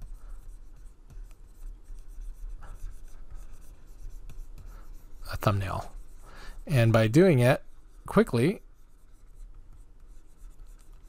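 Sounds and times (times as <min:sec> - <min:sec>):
stylus scratching on tablet: 0:00.0 - 0:11.0.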